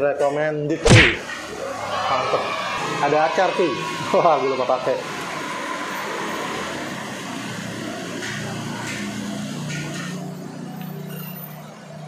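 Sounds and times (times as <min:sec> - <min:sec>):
road traffic noise: 0:00.8 - 0:12.0.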